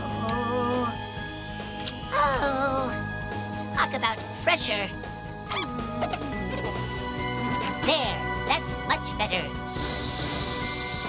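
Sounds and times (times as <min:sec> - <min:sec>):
tense background music: 0:00.0 - 0:11.0
warbling squeaks: 0:05.5 - 0:06.8.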